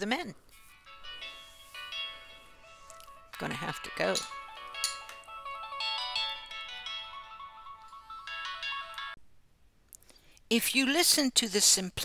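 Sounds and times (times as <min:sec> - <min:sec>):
phone ringtone melody: 0:00.8 - 0:09.2.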